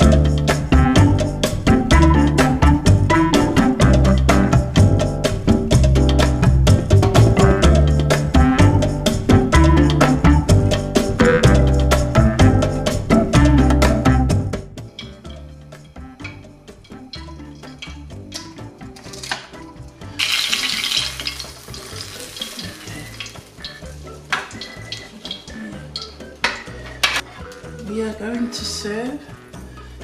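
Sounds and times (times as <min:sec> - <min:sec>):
food sizzling in hot oil: 0:17.6 - 0:27.2
metal utensils clinking on pan: 0:20.2 - 0:27.2.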